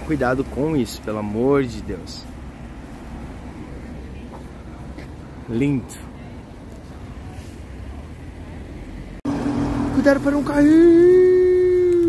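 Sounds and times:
city street traffic rumble: 0:00.0 - 0:12.0.

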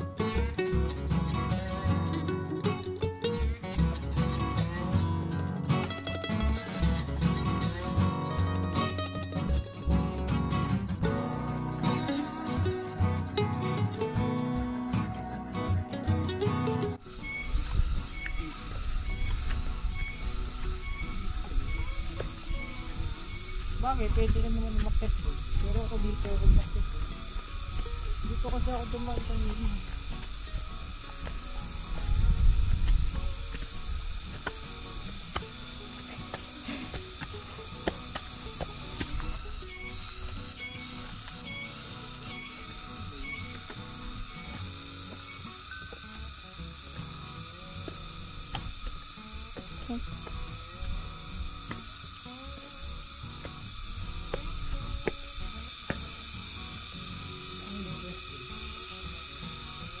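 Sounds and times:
insect chorus drone: 0:17.0 - 1:00.0.

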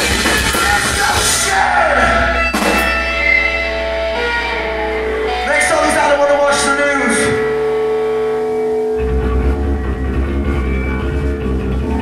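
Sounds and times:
bass guitar: 0:00.0 - 0:12.0
electric guitar chord ringing: 0:02.1 - 0:12.0.

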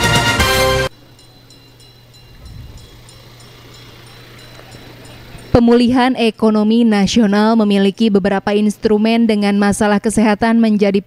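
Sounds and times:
faint street traffic: 0:00.9 - 0:11.0
steady low hum: 0:00.9 - 0:11.0.

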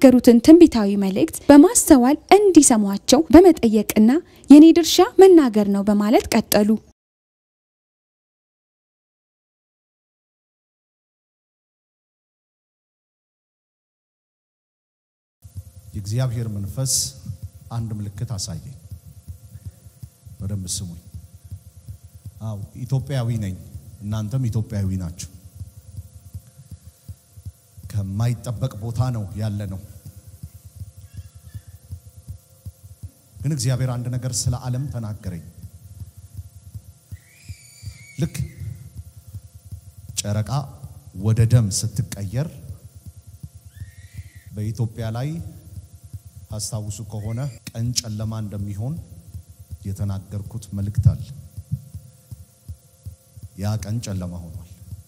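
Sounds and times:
sound system hum: 0:00.0 - 0:06.9, 0:15.4 - 0:55.0
man's amplified voice: 0:16.0 - 0:18.8, 0:20.4 - 0:21.0, 0:22.4 - 0:25.3, 0:27.9 - 0:29.9, 0:40.2 - 0:42.8, 0:44.5 - 0:45.6, 0:53.6 - 0:54.7
soft low thuds: 0:35.6 - 0:37.2, 0:49.2 - 0:53.6.

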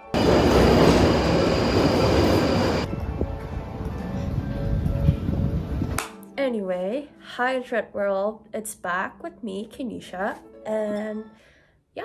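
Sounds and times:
high train squeal: 0:00.0 - 0:02.9
station rumble: 0:00.0 - 0:02.9
train rushing through station: 0:00.0 - 0:03.2
soft music: 0:02.8 - 0:12.0.

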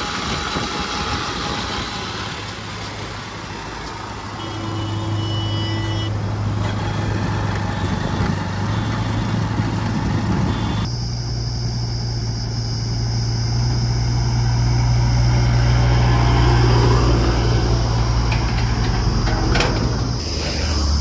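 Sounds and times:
diesel engine running: 0:00.0 - 0:21.0
tyre and wind noise: 0:06.5 - 0:10.9.

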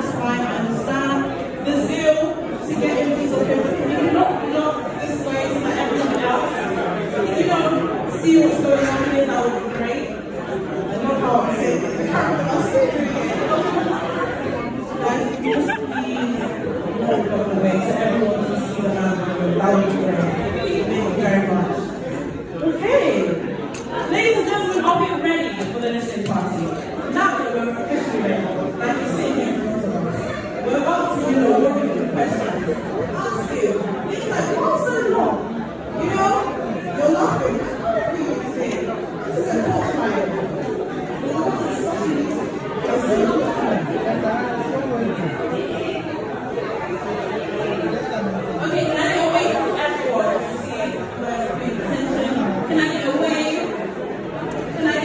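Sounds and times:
voices chattering: 0:00.0 - 0:55.0.

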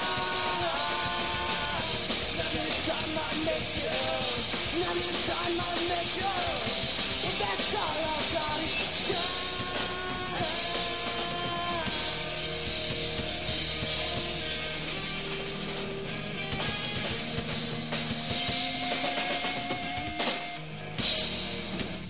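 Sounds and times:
driving drum kit: 0:00.0 - 0:22.0
electric guitars playing chords: 0:00.0 - 0:22.0.

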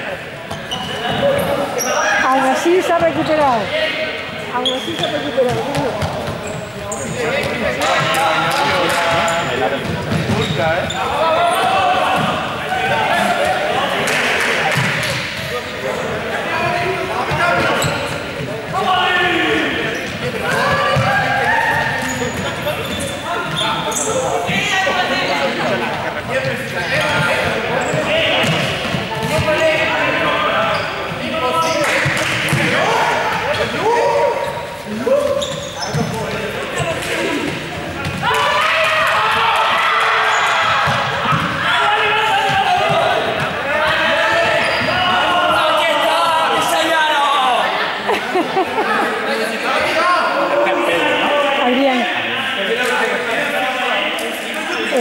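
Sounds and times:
young people shouting and talking: 0:00.0 - 0:55.0
balls bouncing on gym floor: 0:04.9 - 0:06.4, 0:07.2 - 0:10.8, 0:20.1 - 0:21.3, 0:40.8 - 0:41.7.

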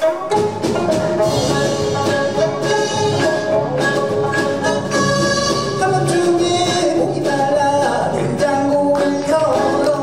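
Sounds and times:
traditional string ensemble: 0:00.0 - 0:06.3
man singing: 0:05.5 - 0:10.0.

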